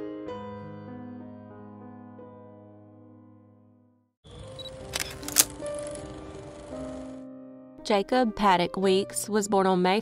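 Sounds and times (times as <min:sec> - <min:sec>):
sharp clicks: 0:04.6 - 0:05.6.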